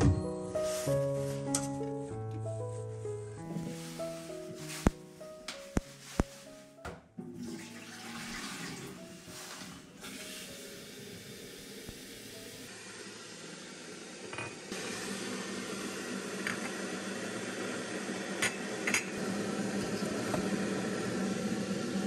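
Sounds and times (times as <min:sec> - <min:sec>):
tap running water into kettle: 0:07.3 - 0:12.4, 0:16.4 - 0:16.8, 0:19.7 - 0:20.9.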